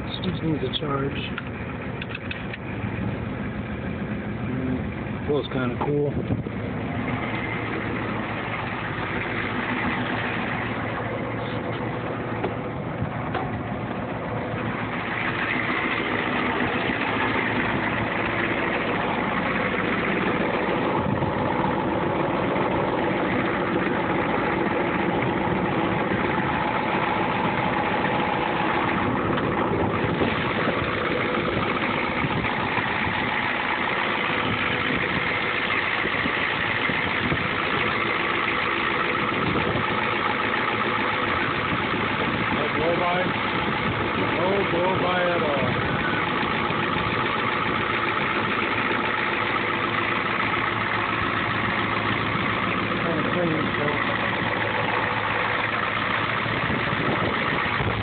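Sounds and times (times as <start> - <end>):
diesel engine idling: 0.0 - 58.0.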